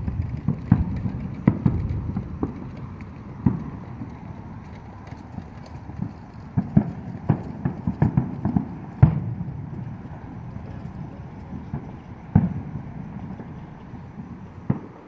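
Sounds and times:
low rumble: 0.0 - 7.3, 8.7 - 14.8
fireworks pops and bangs: 0.0 - 15.0.

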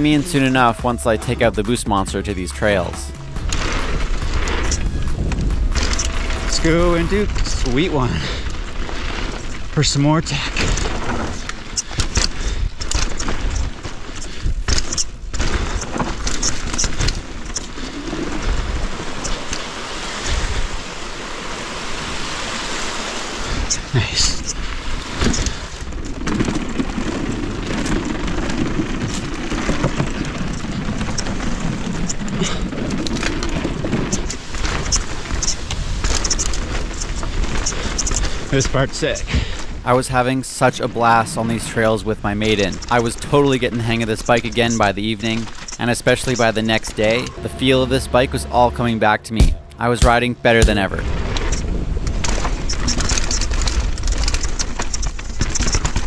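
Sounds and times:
wind buffeting microphone: 0.0 - 9.8
tyres rumbling over dirt and rock: 0.0 - 19.8, 24.9 - 56.0
tyres humming on wooden boardwalk: 0.0 - 56.0
bike clattering over bumps: 3.3 - 19.6, 25.0 - 39.8.

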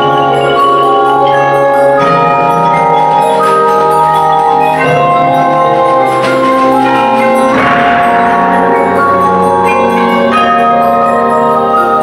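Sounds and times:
mallet percussion chords: 0.0 - 12.0.

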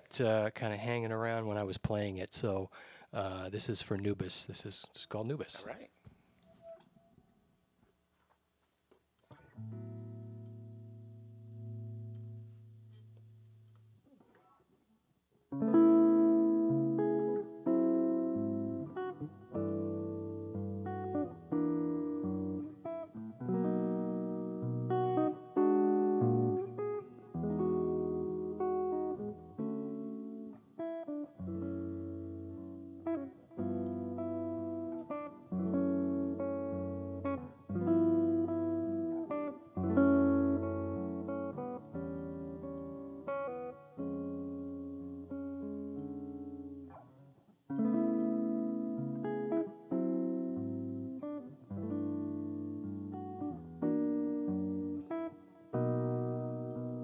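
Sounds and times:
electric guitar playing jazz: 9.3 - 14.6, 15.5 - 57.0.

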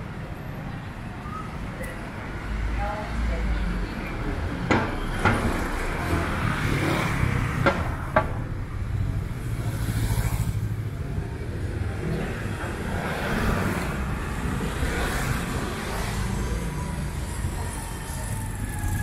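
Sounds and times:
low rumble of street noise: 0.0 - 19.0.

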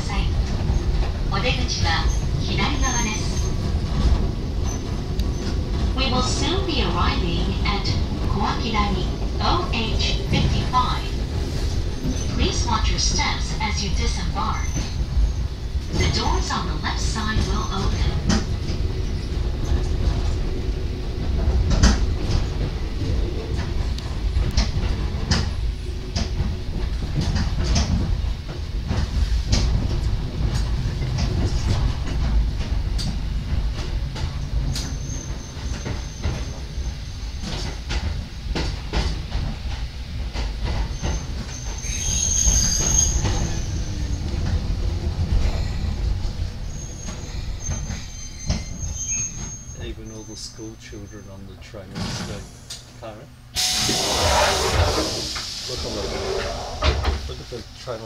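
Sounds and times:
electric train rumbling: 0.0 - 58.0
wheels squealing on curves: 53.6 - 55.2.

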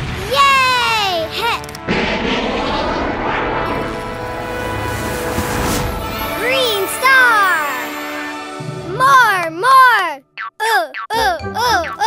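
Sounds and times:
rocket thrust roar: 1.8 - 6.5.

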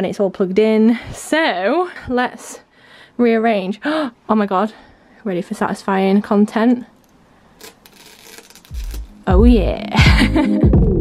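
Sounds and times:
plastic film crinkling: 7.0 - 9.2.

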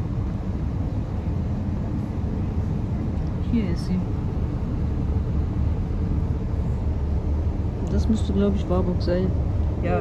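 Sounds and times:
train running rumble: 0.0 - 10.0.

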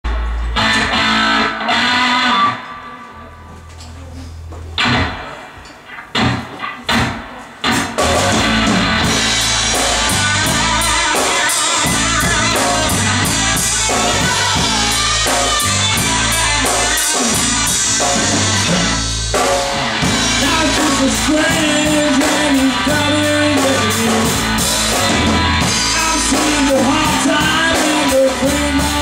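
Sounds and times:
loud guitar chord ringing: 0.1 - 3.5, 8.0 - 29.0
blues-rock band playing: 0.1 - 3.7, 4.8 - 29.0.

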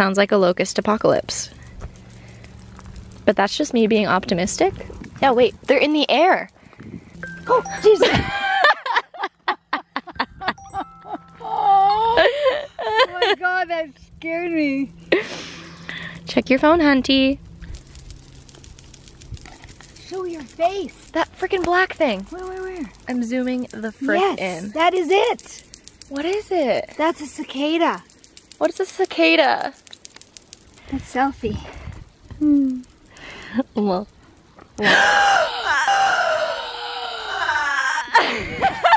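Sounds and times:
cicadas clicking: 0.1 - 8.0, 12.0 - 38.3
woman's drawn-out vocal cry: 11.4 - 12.6, 34.8 - 38.4.

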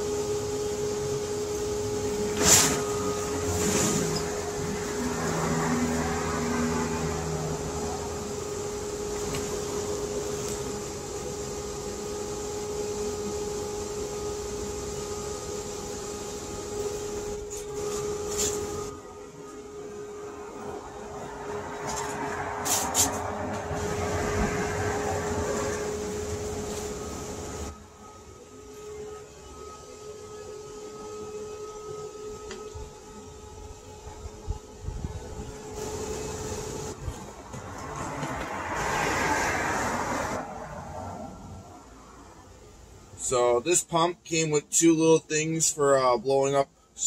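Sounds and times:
electric blower motor humming: 0.0 - 40.7
rushing air: 14.6 - 27.8, 34.4 - 42.2.

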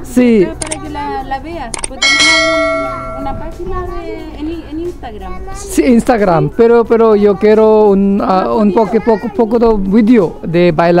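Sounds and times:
sharp clicks: 1.7 - 2.0
bell ringing: 2.0 - 3.7.

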